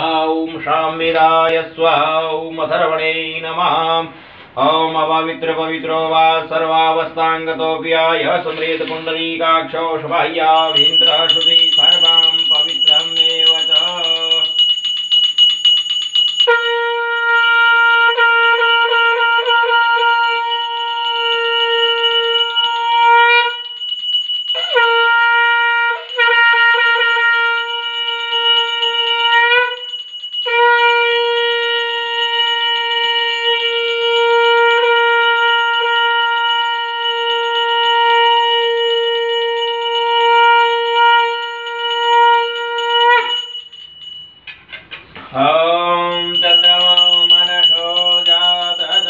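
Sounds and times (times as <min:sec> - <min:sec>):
conch shell blasts: 0:10.4 - 0:14.6, 0:16.4 - 0:23.7, 0:24.6 - 0:45.0, 0:45.9 - 0:49.0.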